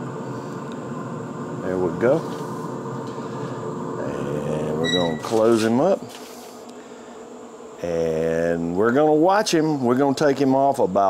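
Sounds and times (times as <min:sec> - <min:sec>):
grill fan buzzing hum: 0:00.0 - 0:11.0.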